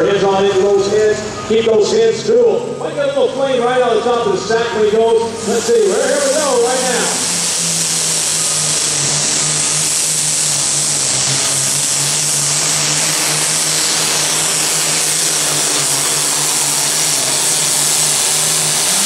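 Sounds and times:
tractor diesel engine at full throttle: 0:00.0 - 0:19.0.

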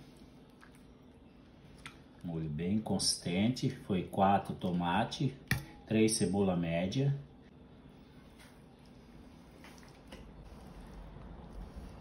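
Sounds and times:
soft wet sauce sounds: 0:00.0 - 0:05.9, 0:07.8 - 0:12.0.

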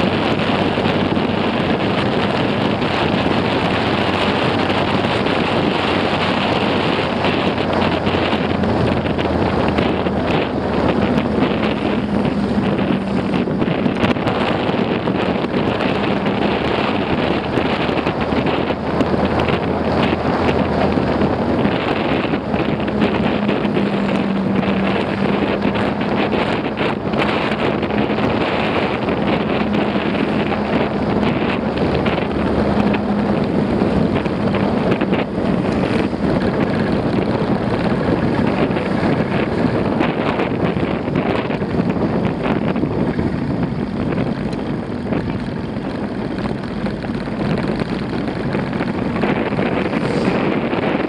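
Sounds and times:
motorcycle engine hum: 0:00.0 - 0:51.0
wind rushing over microphone: 0:00.0 - 0:51.0.

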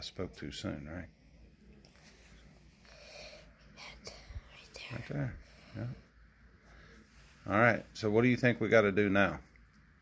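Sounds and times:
faint whispering: 0:01.6 - 0:07.9.

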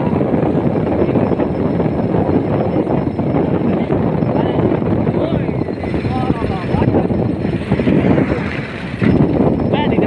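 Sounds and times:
motorcycle running: 0:00.0 - 0:10.0
wind rushing over microphone: 0:00.0 - 0:10.0.

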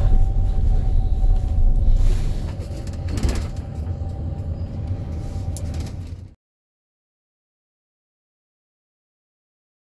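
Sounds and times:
engine and road rumble: 0:00.0 - 0:06.4.

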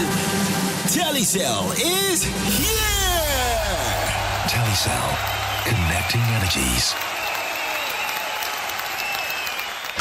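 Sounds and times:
crowd applause: 0:03.0 - 0:10.0.

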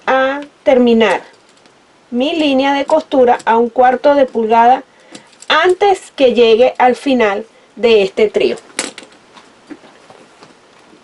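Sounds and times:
fabric rustling: 0:08.4 - 0:11.0.

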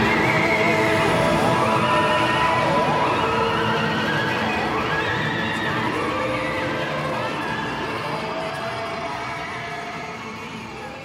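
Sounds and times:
dense noisy drone: 0:00.0 - 0:11.0.

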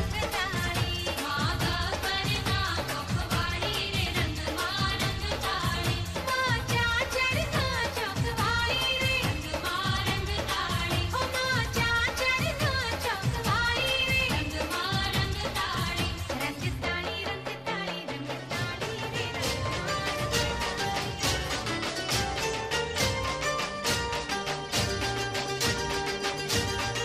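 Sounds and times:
rhythmic drum beat: 0:00.0 - 0:27.0.

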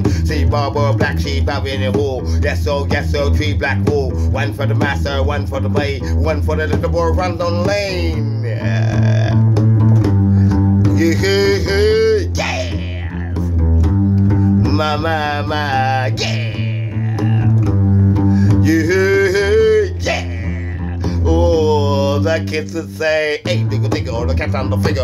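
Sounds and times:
person singing wordless vocal runs: 0:00.0 - 0:09.6, 0:10.8 - 0:13.7, 0:14.3 - 0:25.0
acoustic guitar groove: 0:00.0 - 0:25.0.

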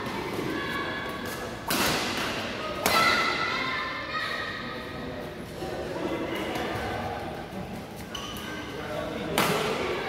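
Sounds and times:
racket hitting shuttlecock: 0:01.6 - 0:03.4.

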